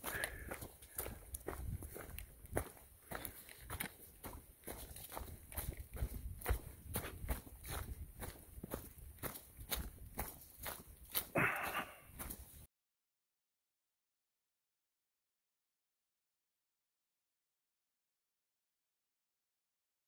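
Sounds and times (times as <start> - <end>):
footsteps on leafy dirt trail: 0.0 - 12.7
wind rumble on microphone: 1.4 - 2.7, 5.2 - 10.2.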